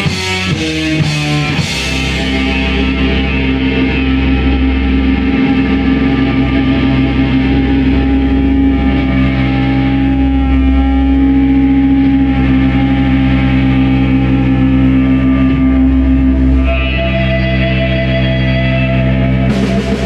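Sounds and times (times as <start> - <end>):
electric guitar droning chord: 0.0 - 20.0
low bass: 0.0 - 20.0.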